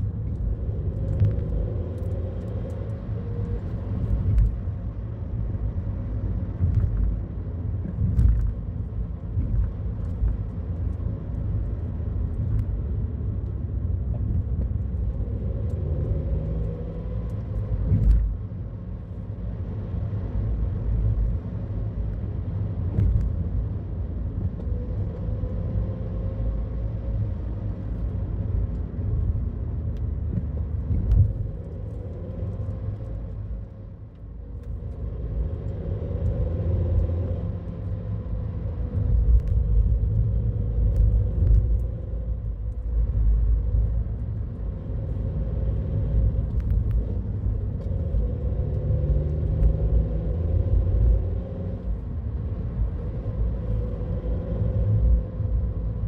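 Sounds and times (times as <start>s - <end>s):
engine and tyre rumble: 0.0s - 56.0s.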